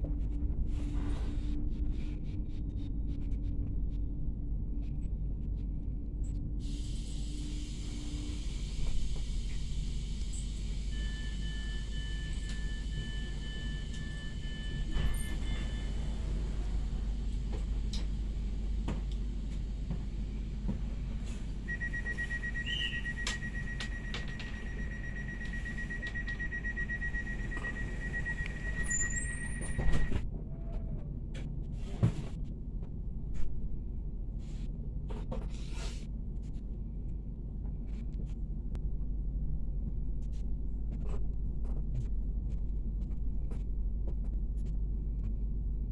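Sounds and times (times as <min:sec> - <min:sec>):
train equipment humming: 0:05.8 - 0:30.2
door warning beeps: 0:11.0 - 0:16.0, 0:21.6 - 0:30.2
train doors shutting thump: 0:27.5 - 0:30.2.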